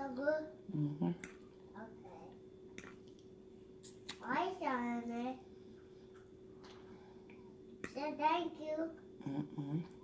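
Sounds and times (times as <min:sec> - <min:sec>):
lip smack: 0:02.8 - 0:04.2.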